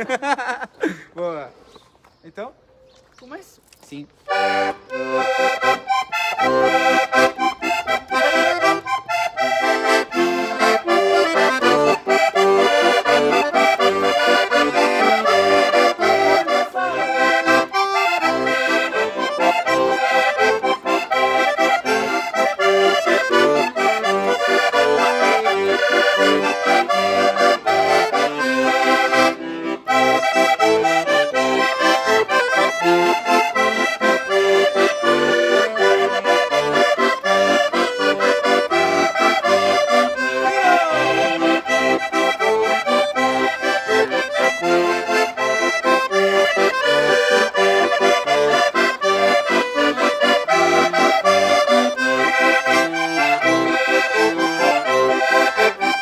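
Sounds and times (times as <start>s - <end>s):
concertina and accordion playing: 0.0s - 56.0s.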